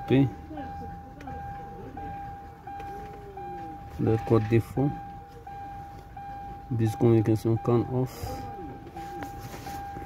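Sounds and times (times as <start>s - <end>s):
high electronic warning tone: 0.0s - 10.0s.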